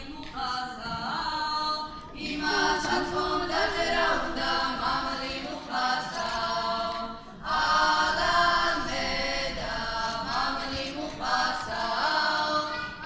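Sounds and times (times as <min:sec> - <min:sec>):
girls choir singing: 0:00.0 - 0:13.0.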